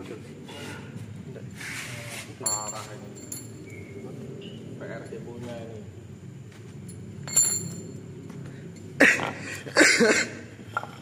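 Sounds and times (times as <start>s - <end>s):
person coughing: 9.0s - 10.4s.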